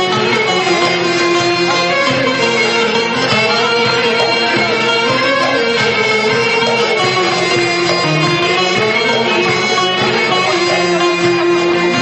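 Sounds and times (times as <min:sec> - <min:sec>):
live folk band playing: 0:00.0 - 0:12.0.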